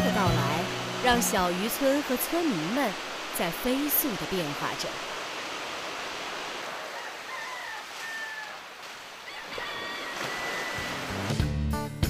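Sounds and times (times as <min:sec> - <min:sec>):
sea surf washing onto beach: 0:00.0 - 0:11.4.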